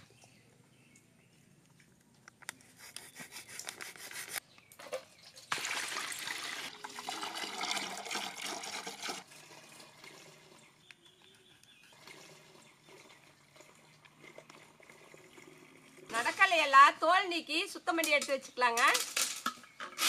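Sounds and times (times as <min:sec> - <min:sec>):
milk pouring into steel pot: 0:05.4 - 0:10.8, 0:11.9 - 0:16.1.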